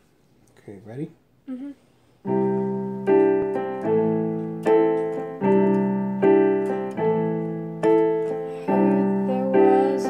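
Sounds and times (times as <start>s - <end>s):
piano playing slow chords: 2.2s - 10.0s.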